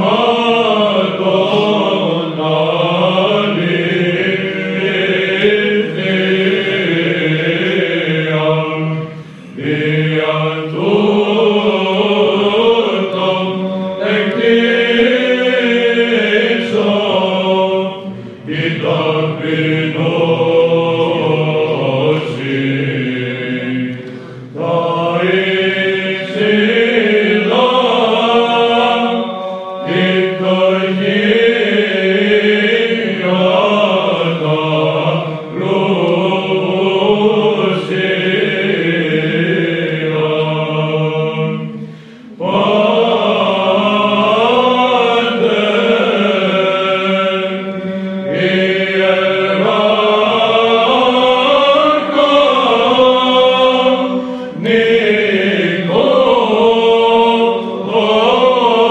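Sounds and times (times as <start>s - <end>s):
men singing a chant: 0.0s - 58.9s.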